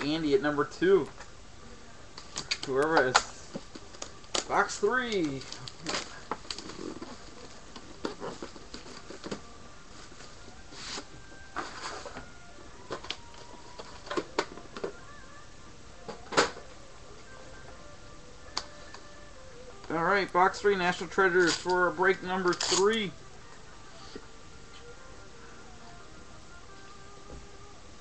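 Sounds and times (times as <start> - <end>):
box clicks and rustles: 2.2 - 9.5
plastic wrap crinkling and tearing: 3.8 - 9.4, 22.4 - 22.9.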